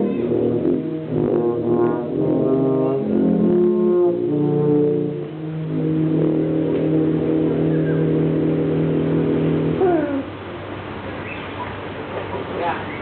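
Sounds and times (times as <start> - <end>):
sustained low brass chord: 0.0 - 11.0.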